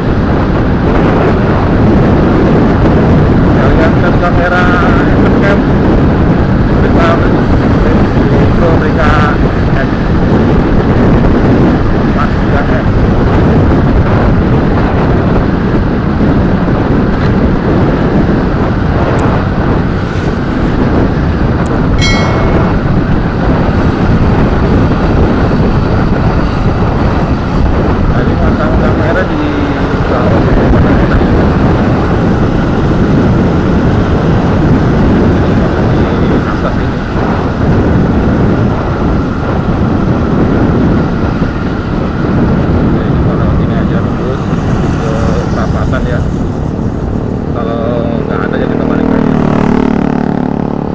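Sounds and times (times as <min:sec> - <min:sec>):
motorcycle engine and tyre drone: 0:00.0 - 0:50.9
wind rush on microphone: 0:00.0 - 0:50.9
brief high-pitched tone: 0:22.0 - 0:23.0.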